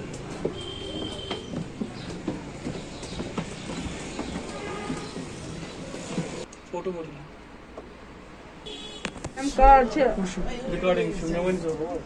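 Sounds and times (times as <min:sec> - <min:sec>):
footsteps on wooden floorboards: 0:00.0 - 0:06.5.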